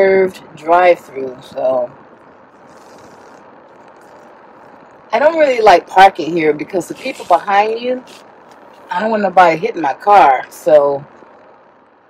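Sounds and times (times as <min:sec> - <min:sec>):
car cabin noise with engine running: 0:00.0 - 0:12.0.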